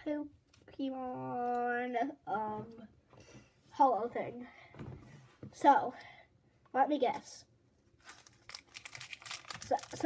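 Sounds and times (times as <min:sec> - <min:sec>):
foil wrapper crinkling: 0:08.0 - 0:10.0.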